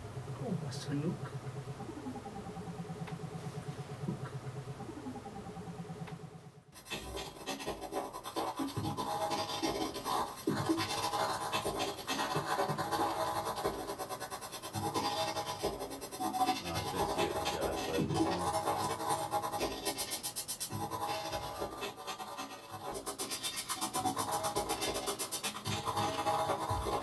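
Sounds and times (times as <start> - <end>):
crackling electronic noise: 0.0 - 14.1
buzzing pulsing synthesizer drone: 0.0 - 27.0.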